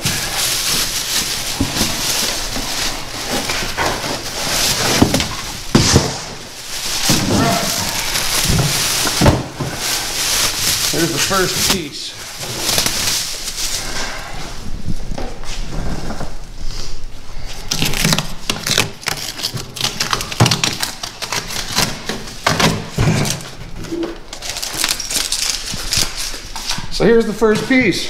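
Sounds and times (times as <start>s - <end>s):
plastic wrapping rustling and crinkling: 0.0s - 28.0s.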